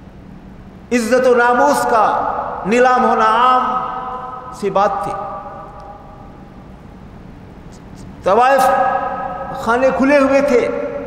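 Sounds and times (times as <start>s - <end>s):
man's amplified voice: 0.9s - 6.1s, 8.2s - 11.0s.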